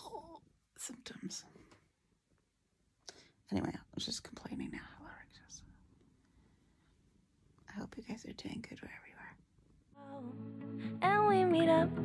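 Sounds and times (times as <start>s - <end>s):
soft whispery voice: 0.0s - 1.8s, 3.1s - 5.8s, 7.8s - 9.4s.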